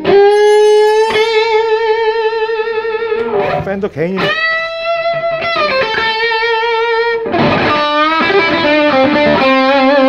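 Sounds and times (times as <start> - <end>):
overdriven electric guitar note: 0.0 - 6.0.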